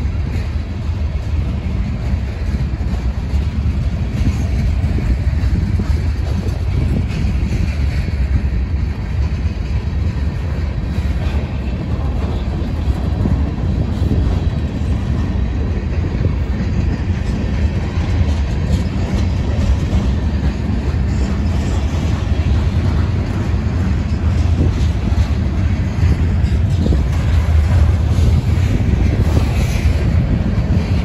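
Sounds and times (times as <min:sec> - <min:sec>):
train wheels rumbling on rails: 0:00.0 - 0:31.0.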